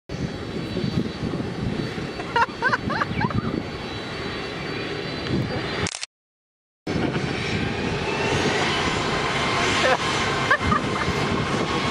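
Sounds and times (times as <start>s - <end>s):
jet engine roar: 0.1s - 5.9s, 6.9s - 11.9s.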